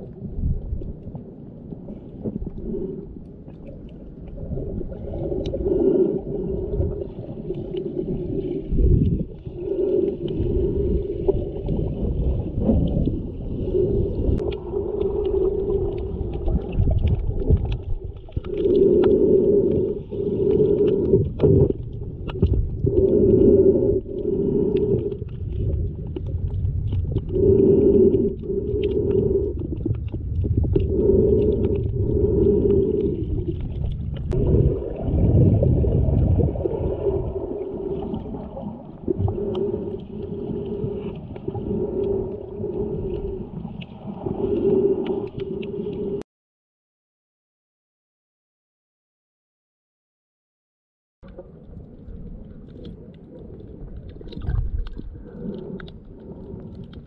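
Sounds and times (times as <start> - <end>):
low hums: 0.0 - 46.2
muffled underwater water rumble: 0.0 - 46.2, 51.2 - 57.0
small clicks and crackles: 14.4 - 34.4, 51.2 - 57.0.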